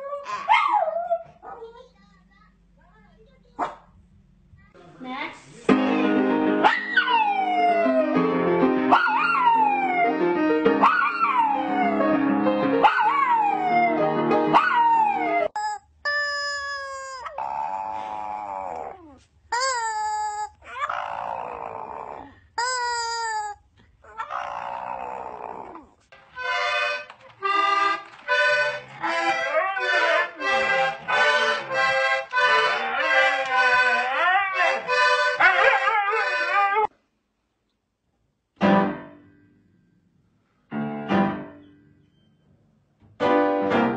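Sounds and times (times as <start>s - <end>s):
music: 5.7s - 15.5s, 26.2s - 35.4s, 38.6s - 39.4s, 40.7s - 42.4s, 43.1s - 43.9s
dog howling: 8.9s - 10.2s, 10.8s - 12.1s, 12.8s - 14.0s, 14.6s - 15.6s, 16.2s - 19.2s, 20.1s - 22.4s, 24.0s - 26.0s, 28.9s - 31.8s, 32.4s - 36.9s.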